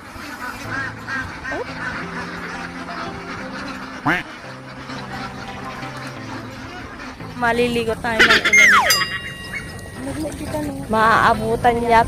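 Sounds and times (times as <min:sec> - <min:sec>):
background music: 0:00.0 - 0:12.0
ducks quacking: 0:00.0 - 0:12.0.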